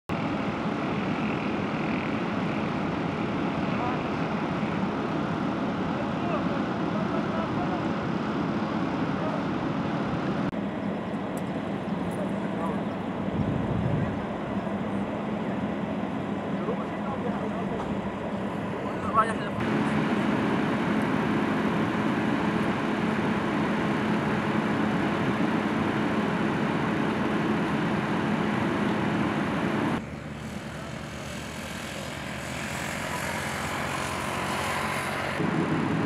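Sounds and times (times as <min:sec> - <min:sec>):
armoured vehicles idling: 0:10.5 - 0:36.0.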